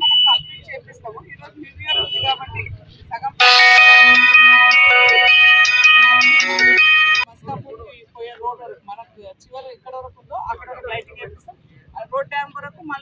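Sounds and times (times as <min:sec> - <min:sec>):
phone ringtone melody: 0:03.4 - 0:07.3.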